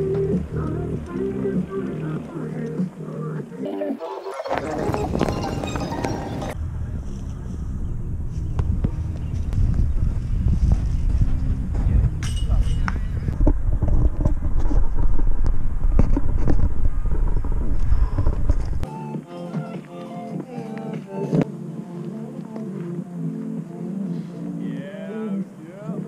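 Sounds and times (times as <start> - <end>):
wind buffeting microphone: 4.5 - 18.9.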